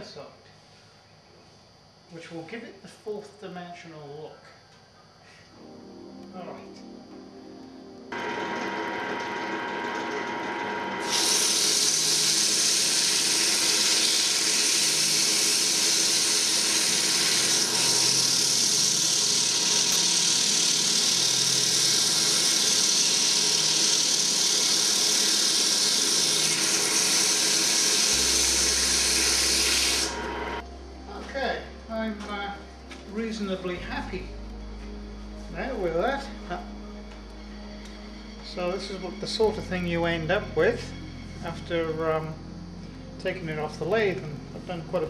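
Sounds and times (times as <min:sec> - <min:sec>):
wood lathe running: 0:08.1 - 0:30.6
sandpaper hissing on spinning wood: 0:11.0 - 0:30.6.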